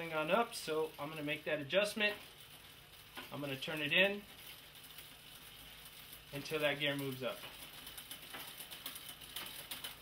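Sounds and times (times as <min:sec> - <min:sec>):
bicycle chain ticking on cogs: 0:00.0 - 0:10.0.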